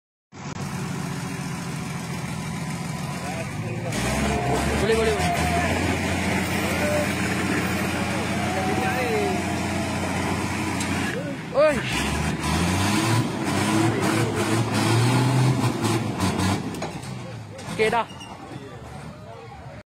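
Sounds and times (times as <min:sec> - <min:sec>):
heavy truck engines running: 0:00.4 - 0:19.8
people talking: 0:02.9 - 0:10.2, 0:11.0 - 0:12.0, 0:13.6 - 0:14.8, 0:17.0 - 0:19.8.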